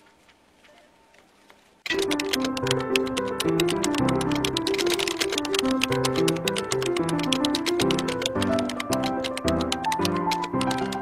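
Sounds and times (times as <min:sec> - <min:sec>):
melody over ticking beat: 0:01.9 - 0:11.0.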